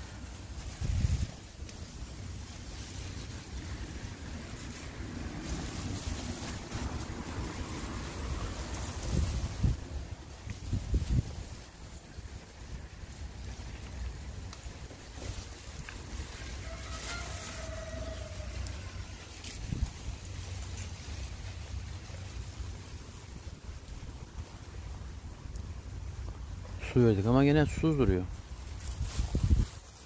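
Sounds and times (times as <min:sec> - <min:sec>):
wind buffeting microphone: 0:00.2 - 0:01.6, 0:03.1 - 0:16.6, 0:18.6 - 0:26.8, 0:28.2 - 0:30.0.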